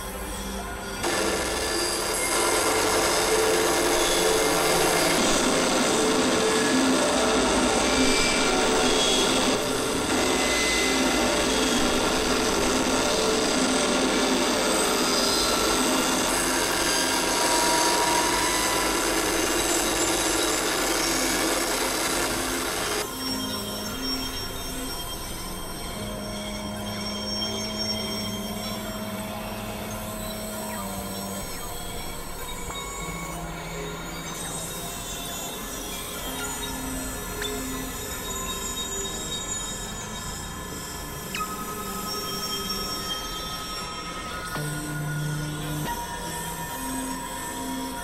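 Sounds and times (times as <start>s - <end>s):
steady synthesizer tones: 0.0s - 23.3s
grainy synthesizer noise texture: 0.0s - 48.0s.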